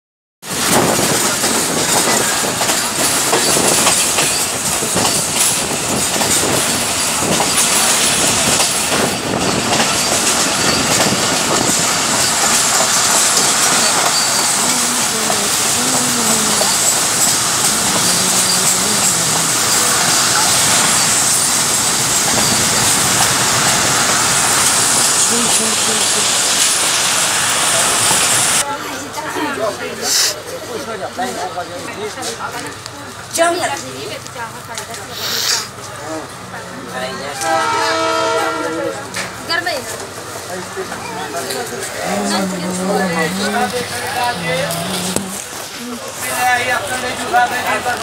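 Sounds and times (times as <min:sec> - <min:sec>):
train wheel and track rush: 0:00.4 - 0:48.0.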